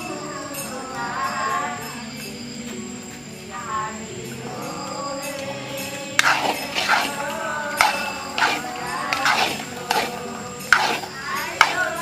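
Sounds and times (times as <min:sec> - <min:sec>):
background music with singing: 0:00.0 - 0:12.0
spatula clinking and scraping metal pan: 0:06.2 - 0:12.0.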